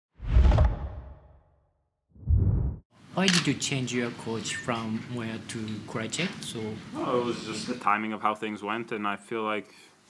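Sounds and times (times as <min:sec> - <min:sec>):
deep whoosh with low rumble: 0:02.2 - 0:02.8.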